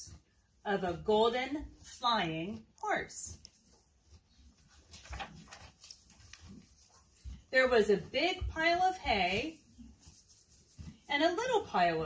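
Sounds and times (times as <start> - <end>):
pony munching hay: 0.0 - 12.0
book page turning: 4.5 - 7.0.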